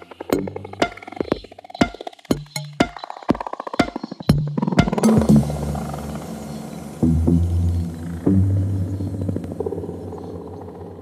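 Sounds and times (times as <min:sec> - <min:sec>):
deep house music bass notes: 0:04.8 - 0:11.0.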